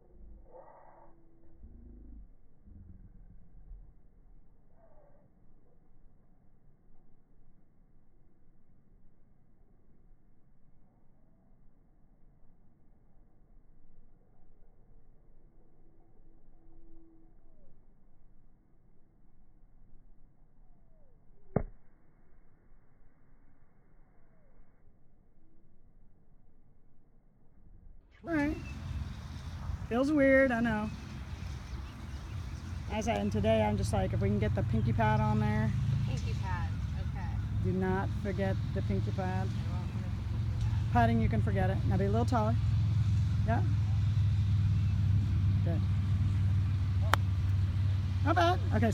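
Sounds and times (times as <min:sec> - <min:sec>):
steady low hum: 0:27.4 - 0:48.9
golf club striking ball: 0:45.8 - 0:48.8.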